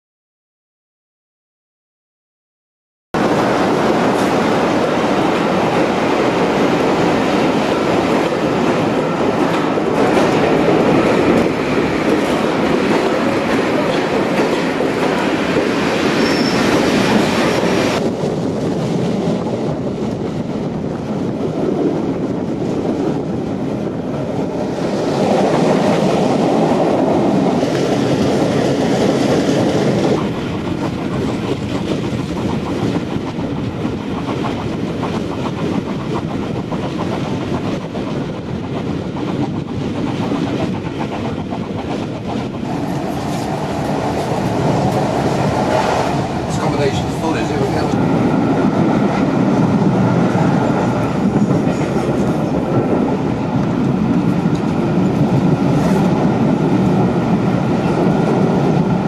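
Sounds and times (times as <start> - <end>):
train wheels clattering over rail joints: 27.5 - 46.2.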